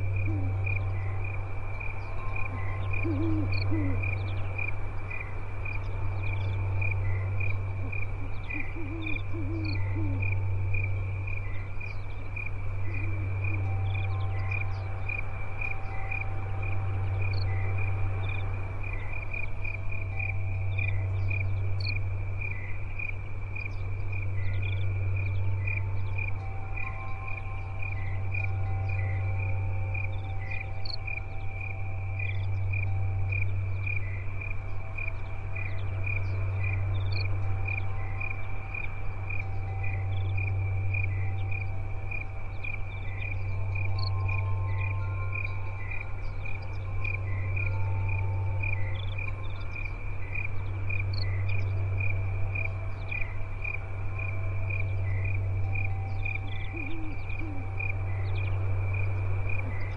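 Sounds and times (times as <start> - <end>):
crickets chirping: 0.0 - 59.9
faint ringing tones: 0.0 - 59.9.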